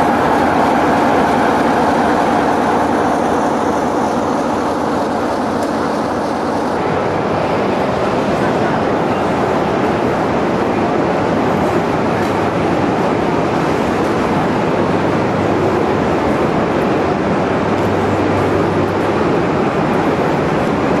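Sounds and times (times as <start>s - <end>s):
train running by: 0.0s - 21.0s.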